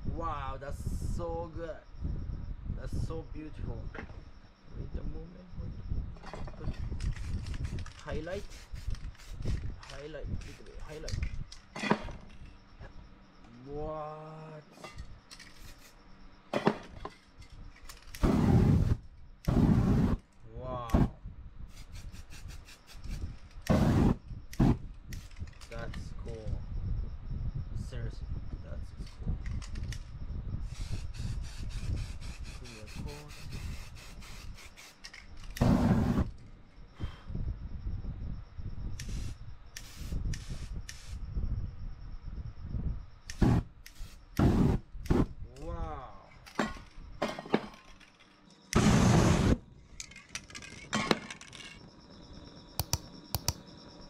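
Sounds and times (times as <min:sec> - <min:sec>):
spray can hissing bursts: 0:08.4 - 0:09.6, 0:15.5 - 0:16.0, 0:21.7 - 0:25.3, 0:30.7 - 0:35.0, 0:39.0 - 0:41.2, 0:43.3 - 0:44.8
flame whooshing: 0:18.2 - 0:20.2, 0:23.7 - 0:25.3, 0:35.6 - 0:36.4, 0:43.3 - 0:45.3, 0:48.8 - 0:49.6
sharp clicks: 0:52.8 - 0:53.6.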